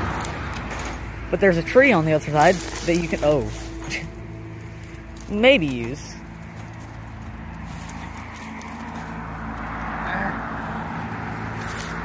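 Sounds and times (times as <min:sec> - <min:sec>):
chain-link fence rattling: 0:00.0 - 0:04.2
steady low hum: 0:00.8 - 0:11.6.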